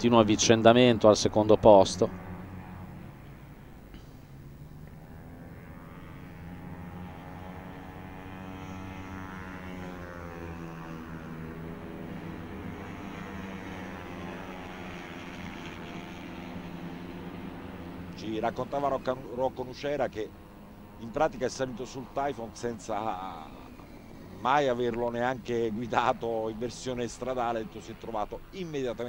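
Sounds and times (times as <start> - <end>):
racing scooter engines: 0.0 - 29.0.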